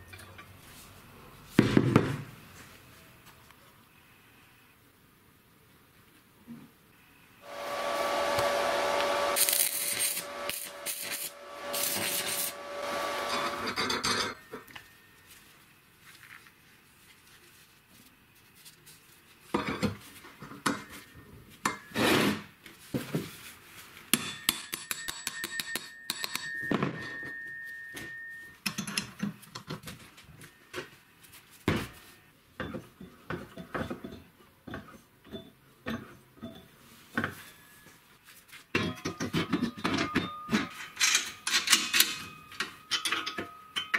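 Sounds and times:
small motor whining: 7.4s - 13.7s
power tool running: 7.4s - 13.8s
steel parts clanking on workbench: 38.8s - 43.9s.

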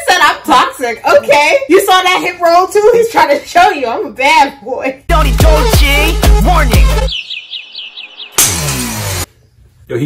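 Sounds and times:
small bird chirping: 7.1s - 8.6s
loud crack of glass: 8.3s - 9.3s.

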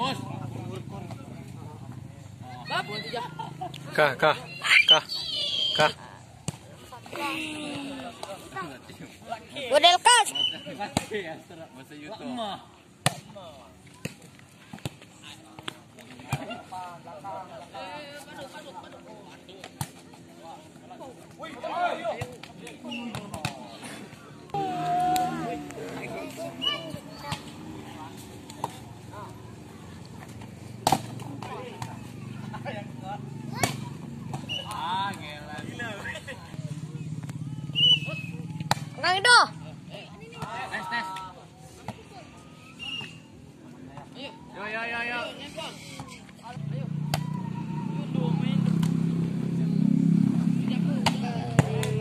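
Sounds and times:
people shouting and chattering: 0.0s - 52.0s
people shouting and calling: 4.2s - 6.1s, 9.7s - 10.8s, 24.5s - 28.0s, 31.2s - 39.6s, 44.1s - 48.6s
volleyball hits: 30.3s - 32.0s, 33.5s - 35.7s, 37.8s - 39.0s, 47.0s - 47.4s, 51.0s - 52.0s
volleyball hit by hand: 30.8s - 31.9s, 38.6s - 39.0s, 51.0s - 52.0s.

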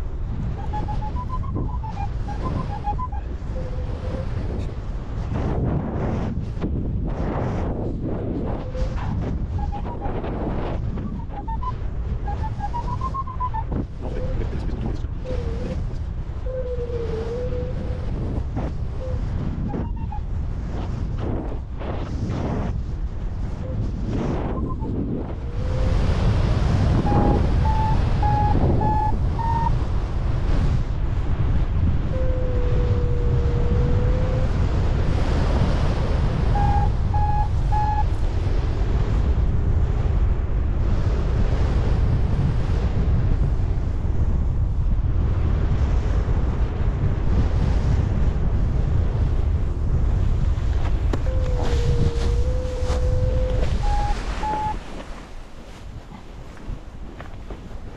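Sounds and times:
wind rushing over microphone: 0.0s - 57.9s
variometer beeping: 52.7s - 54.8s.

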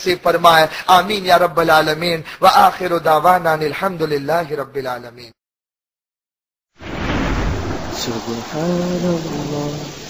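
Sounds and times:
thunder rumble: 6.8s - 10.0s
steady rain: 7.6s - 10.0s.

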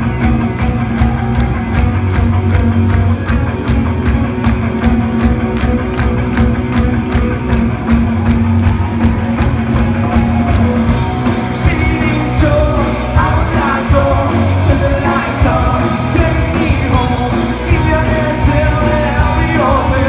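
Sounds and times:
bass guitar: 0.0s - 20.0s
distorted electric guitars: 0.0s - 20.0s
drum kit beat: 0.0s - 20.0s.

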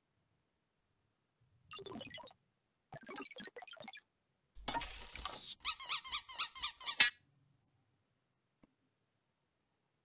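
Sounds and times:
cartoon squeaks: 4.8s - 7.2s.

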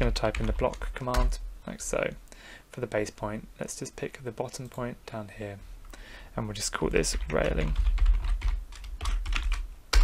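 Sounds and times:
computer keyboard typing: 0.0s - 1.3s, 7.1s - 10.0s.

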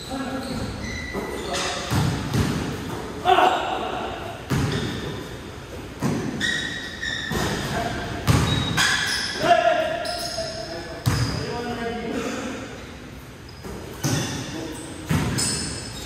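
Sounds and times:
basketball thudding on indoor court: 1.8s - 2.9s, 4.5s - 5.2s, 7.3s - 9.0s, 15.1s - 15.5s.

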